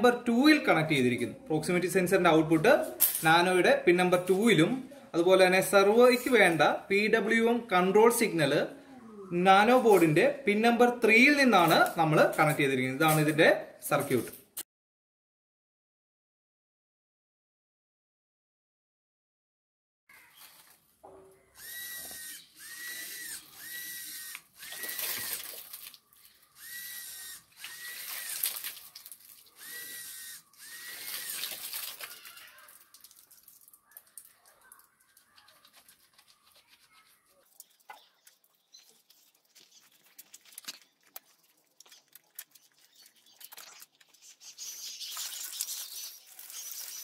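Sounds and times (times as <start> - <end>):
servo motor whining: 21.6 - 32.2.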